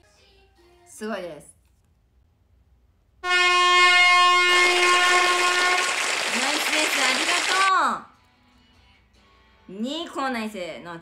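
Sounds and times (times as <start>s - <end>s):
horn or whistle tone: 3.2s - 6.2s.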